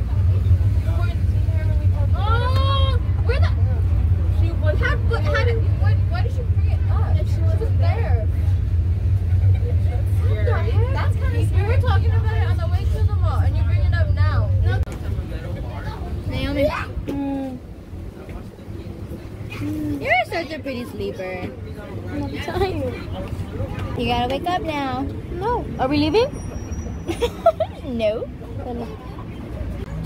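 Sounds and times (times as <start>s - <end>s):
loud low rumble: 0.0s - 16.5s
girls chattering: 0.0s - 17.9s, 18.6s - 26.4s, 27.1s - 30.0s.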